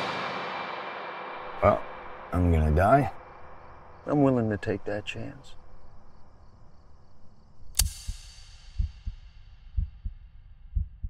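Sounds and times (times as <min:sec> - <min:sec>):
sharp ringing hit: 0:00.0 - 0:04.1, 0:07.8 - 0:09.8
heartbeat thumps: 0:08.0 - 0:11.0.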